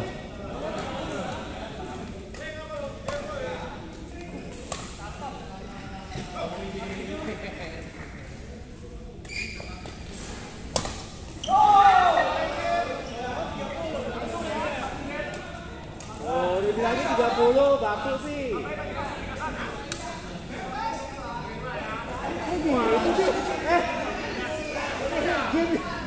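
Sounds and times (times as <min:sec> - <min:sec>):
players shouting and talking: 0:00.0 - 0:07.8, 0:11.2 - 0:26.0
racket hitting shuttlecock: 0:10.7 - 0:11.3.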